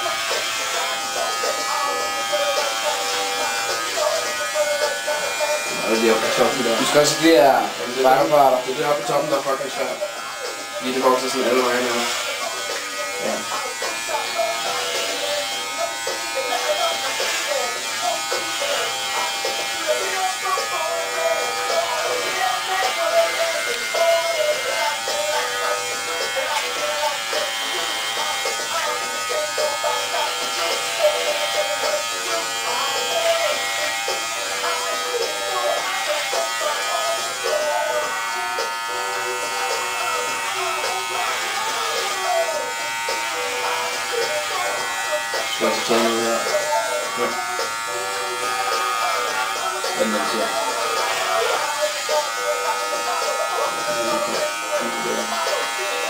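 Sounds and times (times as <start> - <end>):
background music with singing: 0.0 - 56.0
electric hair clippers buzzing: 0.0 - 56.0.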